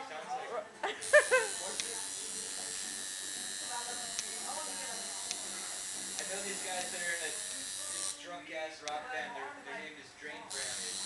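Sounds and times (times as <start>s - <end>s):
tattoo machine buzzing: 1.0s - 8.2s, 10.5s - 11.0s.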